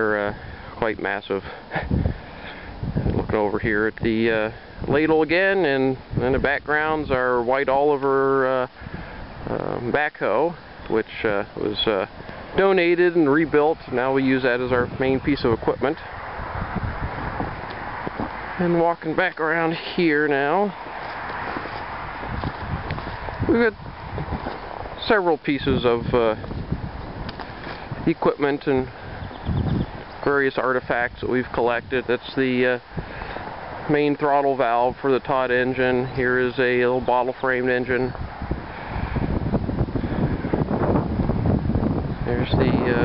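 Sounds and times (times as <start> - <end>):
wind buffeting microphone: 0.0 - 43.0
footsteps in snow: 20.7 - 23.4, 24.1 - 25.0.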